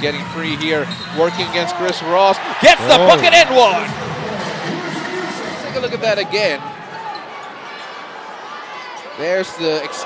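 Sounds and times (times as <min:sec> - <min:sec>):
murmur of arena crowd: 0:00.0 - 0:10.0.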